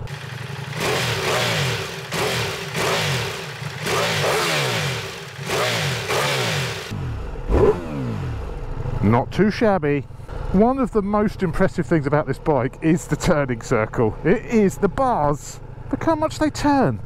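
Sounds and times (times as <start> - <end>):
motorcycle engine revving: 0.0 - 9.4.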